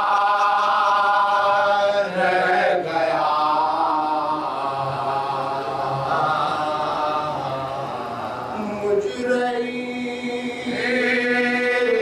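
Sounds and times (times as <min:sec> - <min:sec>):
men singing along: 0:00.0 - 0:12.0.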